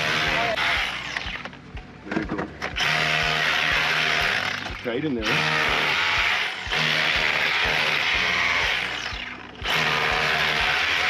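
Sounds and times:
power chisel buzzing: 0.0s - 1.5s, 2.6s - 11.0s.

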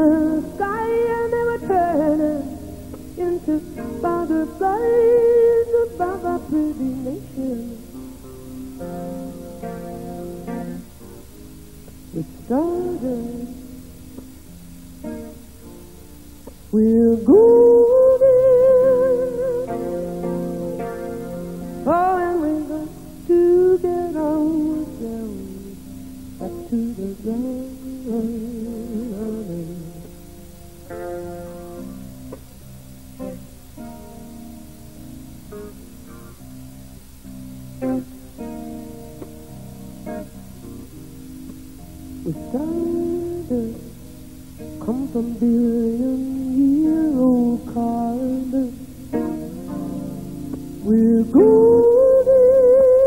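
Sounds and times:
woman singing slow melody: 0.0s - 8.1s, 12.1s - 14.2s, 16.7s - 30.2s, 42.2s - 49.9s, 50.8s - 53.0s
electric guitar: 0.0s - 53.0s.

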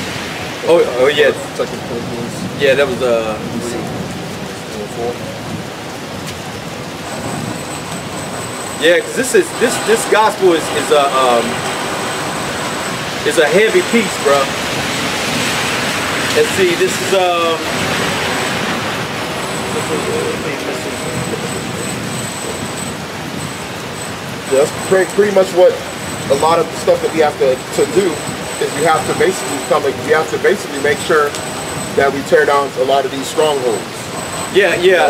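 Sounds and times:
road traffic rumble: 0.0s - 35.0s
faint high whine: 7.1s - 15.5s, 16.3s - 35.0s.

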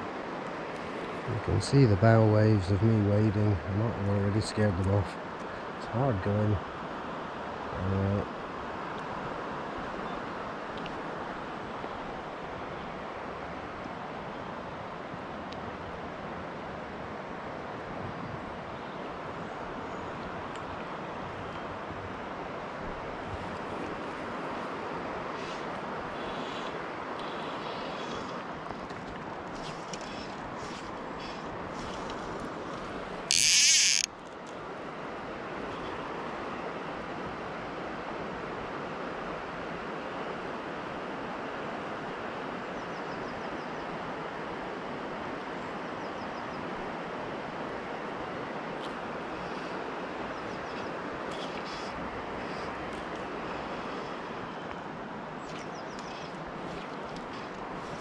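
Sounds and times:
river water rushing: 0.0s - 58.0s
breeze: 23.1s - 36.6s, 47.4s - 58.0s
faint bird chirps: 55.4s - 56.9s.

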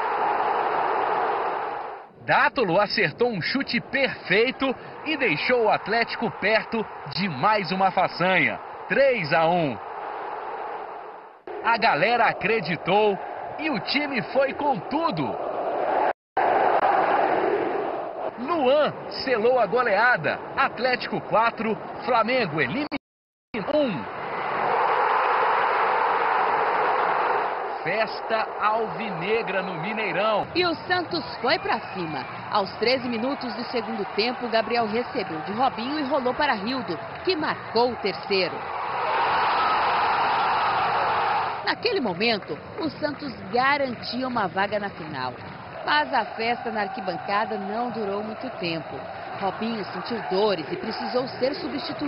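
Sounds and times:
stadium crowd cheering: 0.0s - 22.9s, 23.6s - 52.0s.

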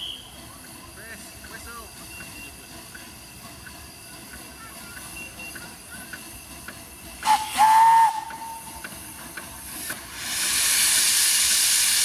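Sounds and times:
steam locomotive whistle: 0.0s - 0.4s, 7.2s - 8.8s
hiss of steam: 7.1s - 12.0s.

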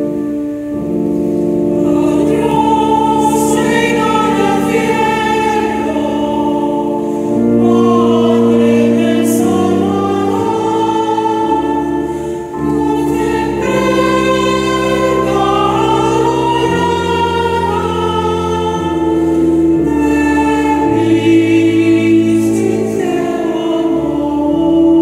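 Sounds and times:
choir singing a hymn: 0.0s - 25.0s
sustained organ chords: 0.0s - 25.0s.

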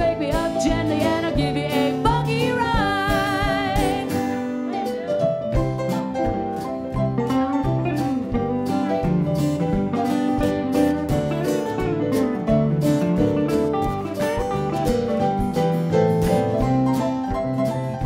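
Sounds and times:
live blues band instrumental: 0.0s - 18.0s.

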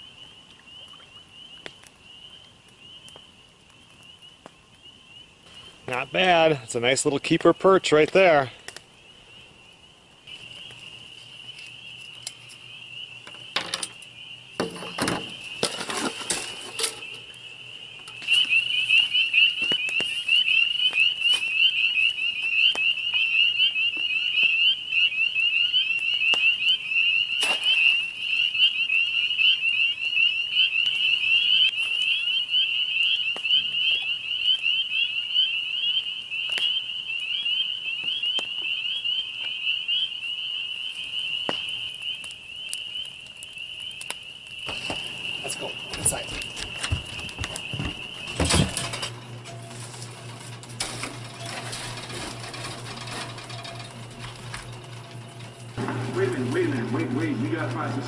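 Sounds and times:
frogs chorus peeping: 0.0s - 50.3s
clicks and rustles: 44.1s - 55.8s.

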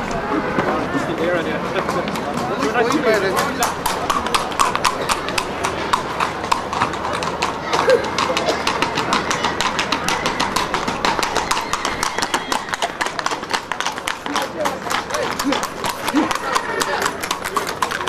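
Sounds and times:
horse hooves clip-clopping: 0.0s - 18.0s.

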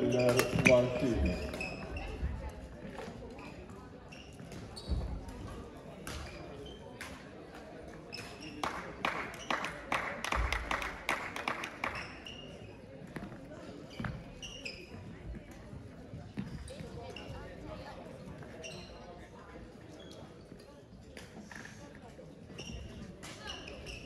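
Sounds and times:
shoe squeaks on court floor: 0.0s - 2.3s, 3.4s - 5.6s, 6.2s - 7.0s, 8.1s - 8.6s, 11.8s - 15.2s, 16.4s - 17.6s, 18.2s - 20.7s, 21.4s - 24.0s
murmur of voices: 0.0s - 24.0s.

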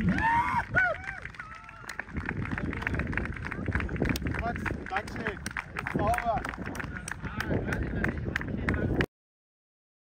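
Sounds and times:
people talking outdoors: 0.0s - 9.1s
wind rumble on microphone: 0.0s - 9.1s.

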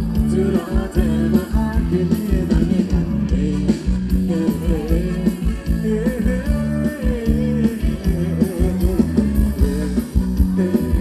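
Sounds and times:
live band playing dance music: 0.0s - 11.0s.

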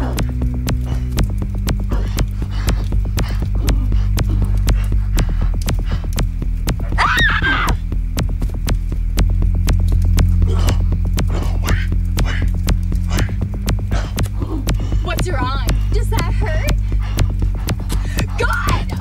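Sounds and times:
low throbbing bass drone: 0.0s - 19.0s
rapid ticking pulse: 0.0s - 19.0s.

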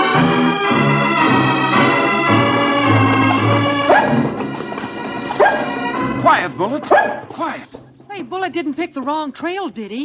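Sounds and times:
organ music: 0.0s - 8.6s
dog barking: 3.9s - 4.3s, 5.3s - 5.8s, 6.9s - 7.3s.

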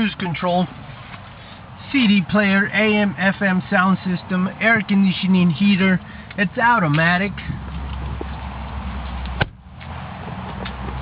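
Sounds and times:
car door shutting: 9.3s - 9.6s.

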